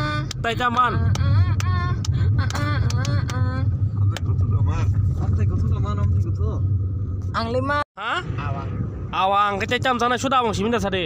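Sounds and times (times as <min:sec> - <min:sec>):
car engine rumble: 0:00.0 - 0:11.0
road noise inside car: 0:00.0 - 0:11.0.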